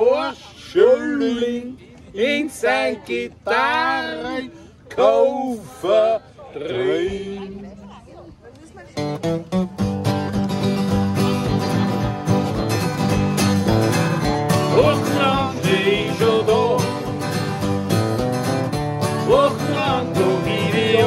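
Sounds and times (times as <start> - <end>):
acoustic guitars strumming: 9.0 - 21.0
person singing: 14.7 - 17.1, 19.2 - 21.0.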